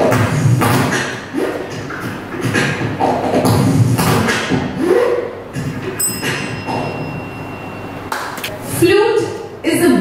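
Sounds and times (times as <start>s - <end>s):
beatboxing into a microphone: 0.0s - 6.8s.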